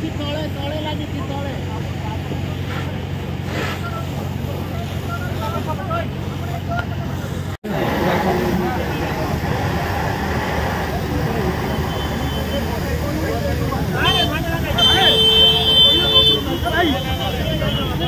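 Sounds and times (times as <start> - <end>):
low engine drone: 0.0 - 14.0
fire hose spraying water: 0.0 - 18.0
onlookers talking: 0.0 - 18.0.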